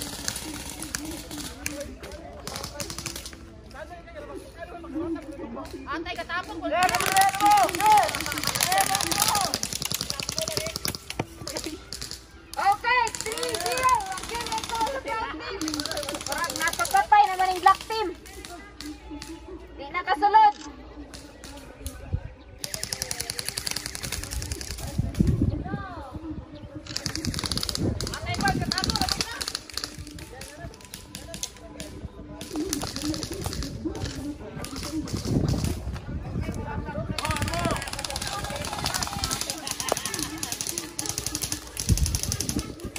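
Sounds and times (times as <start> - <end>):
airsoft guns firing on full auto: 0.0 - 1.8, 2.4 - 3.4, 6.7 - 11.1, 11.9 - 18.9, 22.6 - 24.9, 26.9 - 31.5, 32.4 - 35.8, 37.2 - 42.9
loud shouting voices: 6.6 - 10.8, 12.5 - 21.8
players calling out: 6.7 - 19.7.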